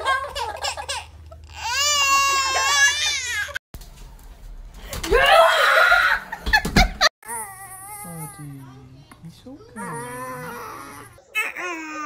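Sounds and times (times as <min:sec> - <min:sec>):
baby crying: 0:01.4 - 0:03.6, 0:09.8 - 0:12.0.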